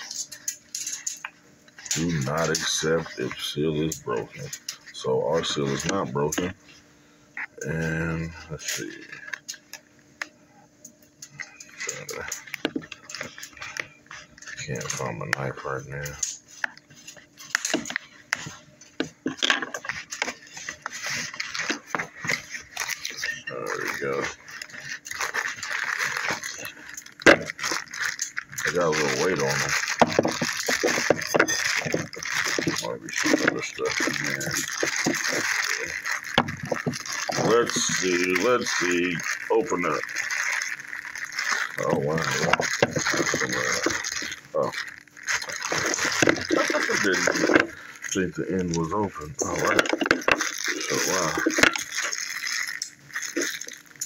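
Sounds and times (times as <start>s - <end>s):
plastic wrap crinkling: 0.0s - 6.7s, 7.6s - 10.3s, 11.2s - 54.0s
sharp clicks and tearing: 19.8s - 54.0s.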